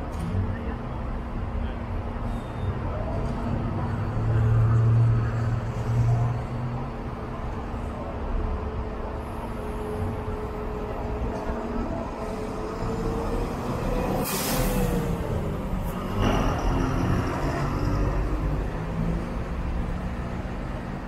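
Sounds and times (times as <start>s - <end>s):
bus engine driving past: 2.1s - 21.0s
air brakes hiss: 14.2s - 15.0s.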